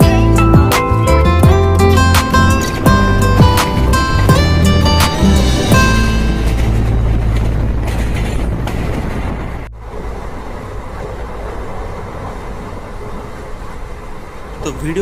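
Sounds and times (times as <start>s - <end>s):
low hum: 0.0s - 14.7s
train carriage running noise: 0.0s - 15.0s.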